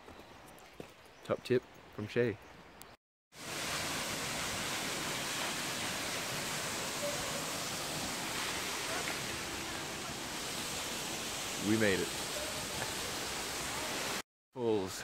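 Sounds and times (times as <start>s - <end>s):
water rushing: 3.4s - 14.2s.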